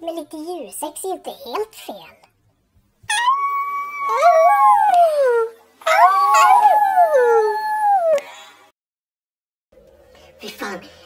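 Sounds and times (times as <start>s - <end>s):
dogs howling together: 3.2s - 8.2s.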